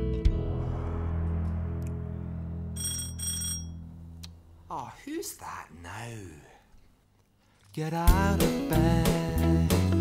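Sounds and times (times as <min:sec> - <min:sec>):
doorbell ringing: 0:02.8 - 0:03.9.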